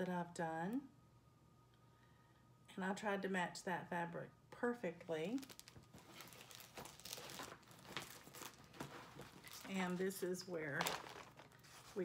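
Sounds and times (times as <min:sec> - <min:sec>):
fabric crinkling and rustling: 0:05.2 - 0:12.0.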